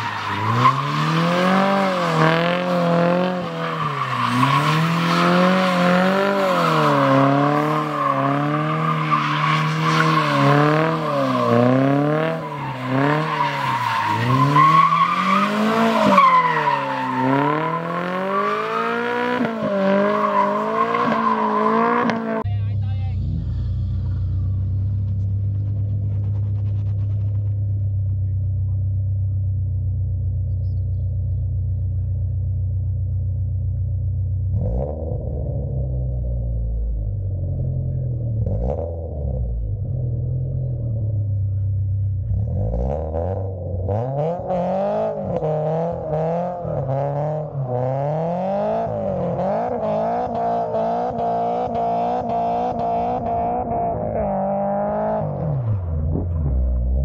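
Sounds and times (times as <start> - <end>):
car engine revving: 0.0 - 31.9, 32.7 - 57.0.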